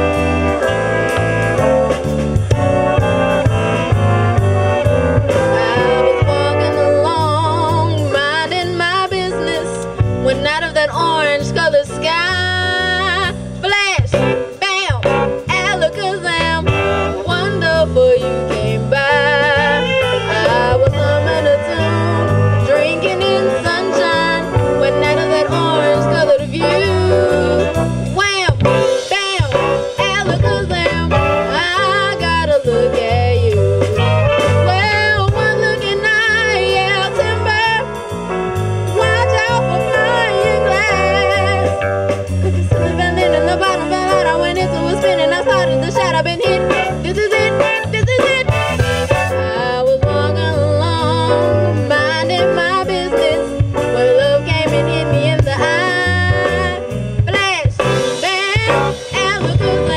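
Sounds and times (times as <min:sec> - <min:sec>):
jazz band playing swing: 0:00.0 - 0:59.9
person singing: 0:04.0 - 0:37.8, 0:39.0 - 0:59.9.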